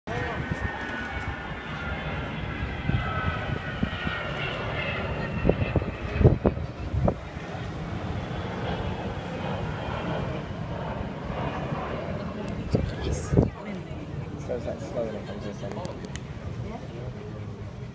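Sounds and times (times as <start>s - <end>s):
jet aircraft flying past: 0.1s - 17.9s.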